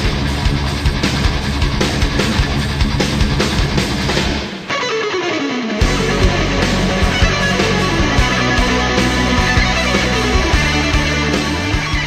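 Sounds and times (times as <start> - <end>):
heavy rock music: 0.0 - 12.0
guitar note sliding down: 4.5 - 12.0.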